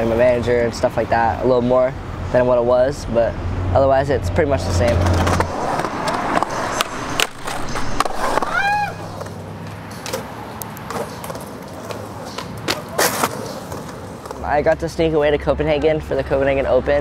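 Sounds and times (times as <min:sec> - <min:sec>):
skateboard wheels rolling on concrete: 0:00.0 - 0:17.0
skateboard clicks and knocks: 0:04.7 - 0:14.7.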